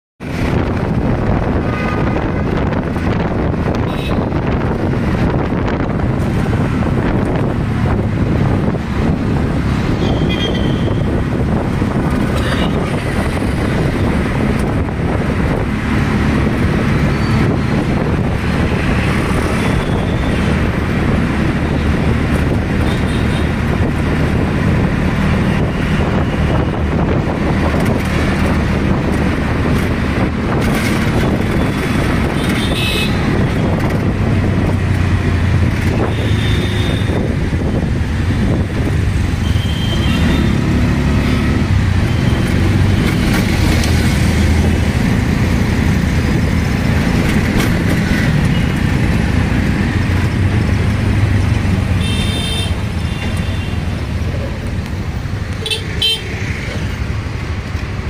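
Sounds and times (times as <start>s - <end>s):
auto-rickshaw engine running: 0.2s - 58.0s
horns honking: 32.2s - 33.4s, 51.9s - 53.9s, 55.6s - 56.4s.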